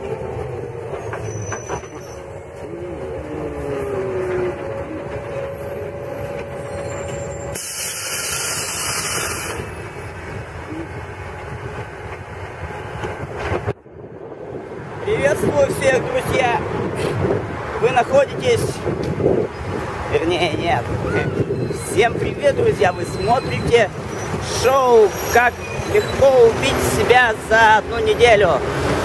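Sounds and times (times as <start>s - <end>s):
vehicle running rumble with whine: 0.0s - 7.6s
high air hiss: 7.6s - 9.6s.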